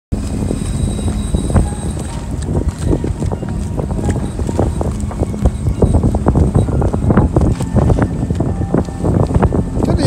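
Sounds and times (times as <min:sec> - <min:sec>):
boat engine hum: 0:00.1 - 0:10.0
wind buffeting microphone: 0:00.2 - 0:10.0.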